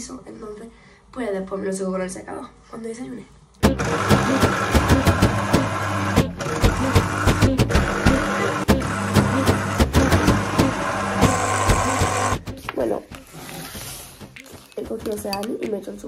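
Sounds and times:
electric juicer motor humming: 0:03.6 - 0:12.4.

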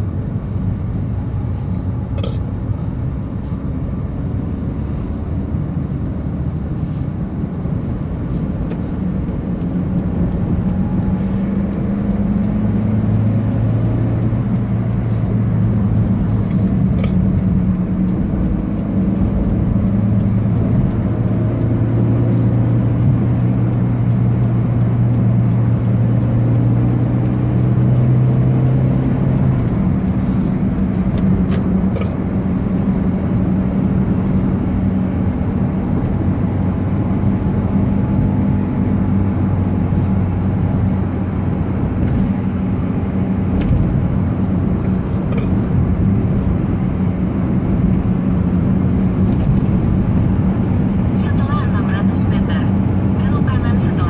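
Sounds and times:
car engine hum: 0:00.0 - 0:54.0
tyre road rumble: 0:00.0 - 0:54.0.

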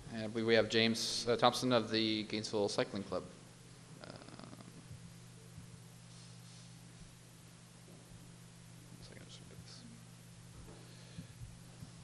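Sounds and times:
low electrical hum: 0:00.0 - 0:12.0
person whispering: 0:04.0 - 0:04.8.

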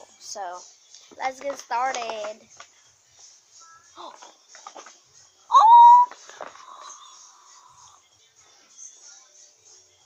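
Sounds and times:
girl squealing: 0:05.5 - 0:06.2.

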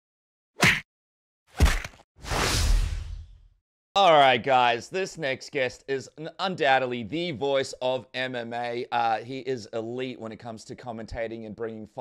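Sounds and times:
man speaking: 0:04.0 - 0:12.0.

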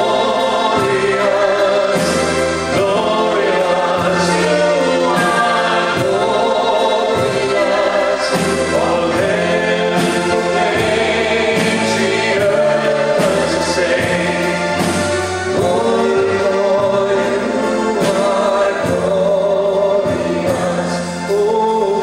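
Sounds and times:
bass guitar: 0:00.0 - 0:22.0
drum kit: 0:00.0 - 0:22.0
keyboard: 0:00.0 - 0:22.0
person singing: 0:00.0 - 0:22.0.

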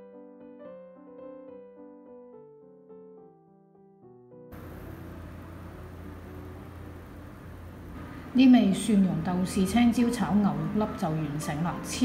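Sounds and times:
soft piano music: 0:00.0 - 0:12.0
room noise hum and hiss: 0:04.5 - 0:12.0.

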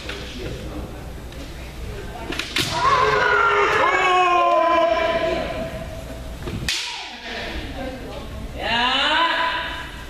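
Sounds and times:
fencers shouting: 0:02.7 - 0:05.8.

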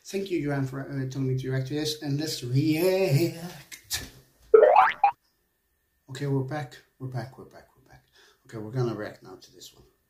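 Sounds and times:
cartoon boing swoop: 0:04.6 - 0:05.1.

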